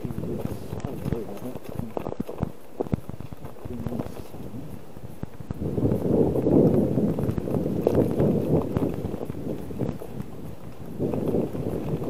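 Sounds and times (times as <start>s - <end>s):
bicycle tyres crunching on ice: 0.0s - 12.0s
bike rattling: 0.0s - 12.0s.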